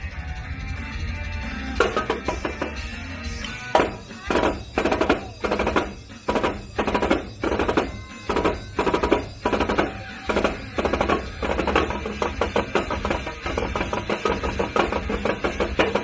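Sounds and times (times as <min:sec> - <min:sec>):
snare drum rolls: 0:03.8 - 0:16.0.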